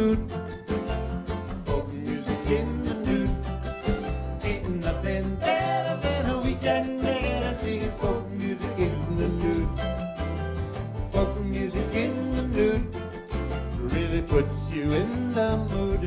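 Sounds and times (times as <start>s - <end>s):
acoustic band playing folk song: 0.0s - 16.0s
low bass line: 0.0s - 16.0s
strummed acoustic guitar: 0.0s - 16.0s.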